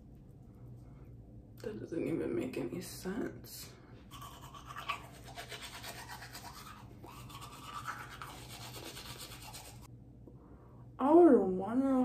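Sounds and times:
toothbrush scrubbing teeth: 4.1s - 9.9s.

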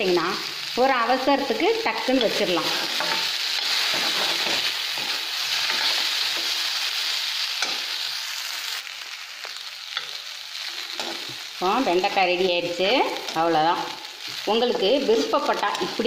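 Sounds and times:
okra sizzling in oil: 0.0s - 16.0s
metal spoon scraping a pan: 2.1s - 6.6s, 7.5s - 8.0s, 9.9s - 11.4s.

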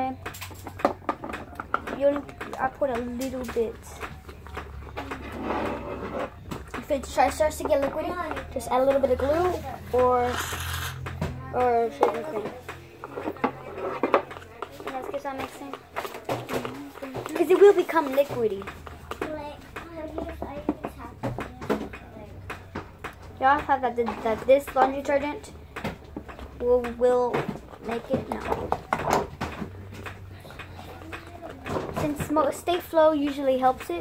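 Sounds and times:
stirrers tapping plastic cups: 0.0s - 34.0s
straws stirring slime: 0.8s - 11.2s.

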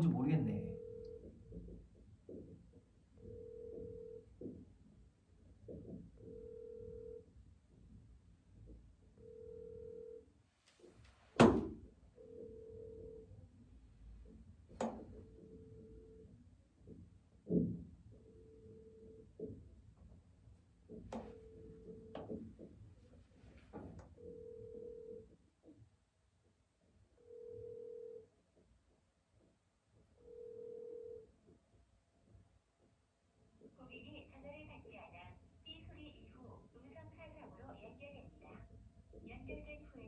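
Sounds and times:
telephone ringback tone: 0.6s - 1.2s, 3.2s - 4.2s, 6.3s - 7.2s, 9.2s - 10.2s, 12.2s - 13.3s, 24.2s - 25.2s, 27.2s - 28.3s, 30.2s - 31.3s
sharp thump: 11.4s - 11.8s.

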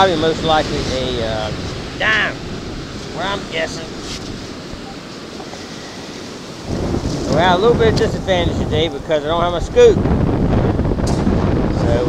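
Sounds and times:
surf washing over sand: 0.0s - 12.0s
wind buffeting microphone: 0.0s - 12.0s.

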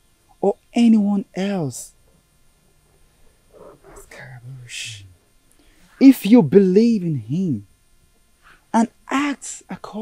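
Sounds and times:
faint hiss: 0.0s - 10.0s
man speaking softly: 3.7s - 5.2s, 6.0s - 7.6s, 8.8s - 10.0s.

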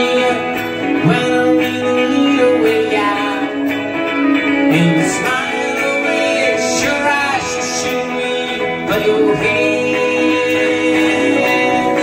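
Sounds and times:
electric guitars: 0.0s - 12.0s.

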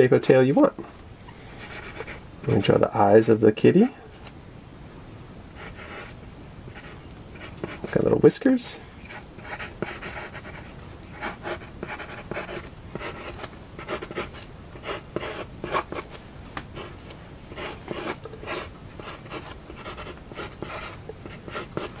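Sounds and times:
pencil sketching on paper: 1.6s - 2.8s, 9.1s - 16.1s, 16.8s - 22.0s.

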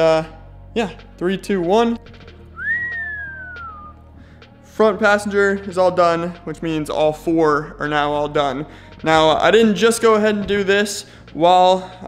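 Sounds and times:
faint background music: 0.0s - 12.0s
person whistling sliding note: 2.6s - 4.0s.

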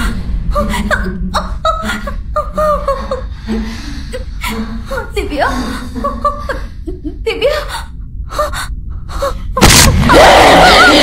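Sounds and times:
woman startled cry: 9.6s - 11.0s.

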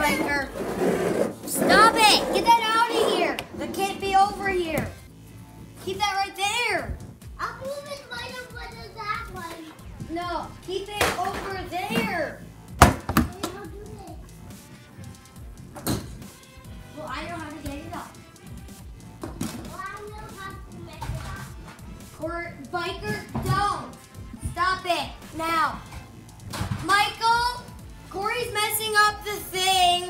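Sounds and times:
children talking and calling out: 1.5s - 5.0s, 5.8s - 12.4s, 13.2s - 14.4s, 16.6s - 18.2s, 19.6s - 26.1s, 26.8s - 30.0s.

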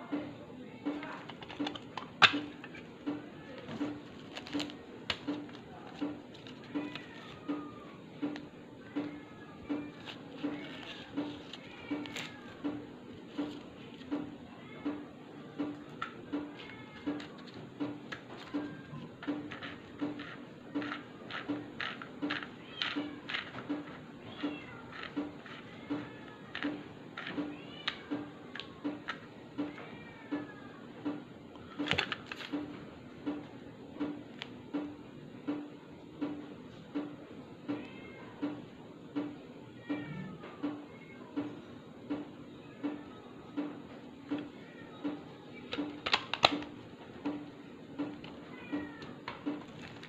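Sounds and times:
plastic cassette cases clicking: 45.7s - 46.7s.

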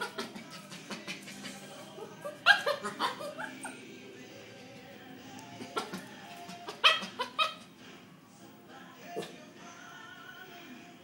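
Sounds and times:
puppy yapping barks: 2.3s - 3.8s, 6.7s - 7.7s.

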